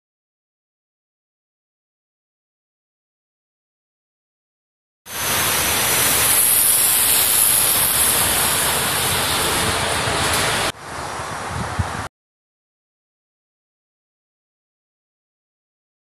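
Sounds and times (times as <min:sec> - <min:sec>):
street ambience rushing hiss: 0:05.1 - 0:12.1.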